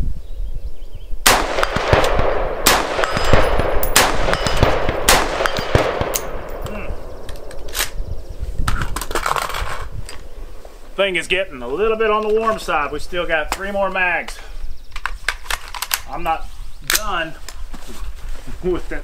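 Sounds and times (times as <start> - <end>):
rifle shots echoing: 1.2 - 8.2.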